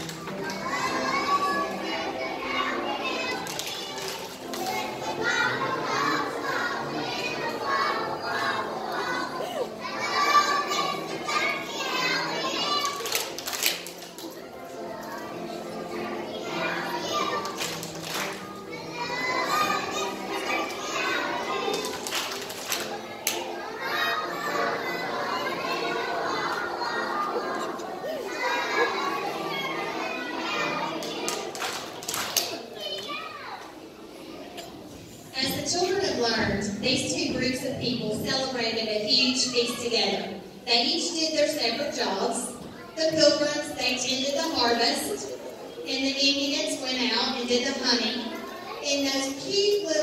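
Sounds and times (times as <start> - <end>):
children singing together: 0.0 - 33.2.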